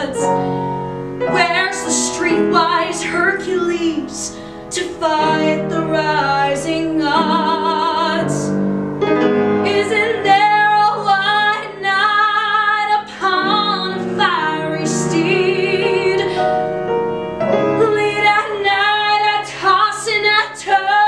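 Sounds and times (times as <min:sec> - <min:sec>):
woman singing with vibrato: 0:00.0 - 0:00.5, 0:01.3 - 0:08.6, 0:09.6 - 0:16.7, 0:17.8 - 0:21.0
instrumental accompaniment: 0:00.0 - 0:21.0
singer breathing: 0:00.3 - 0:01.0, 0:04.3 - 0:04.7.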